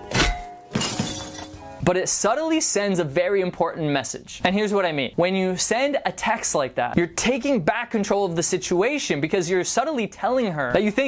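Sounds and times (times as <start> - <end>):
background music: 0.0 - 2.1.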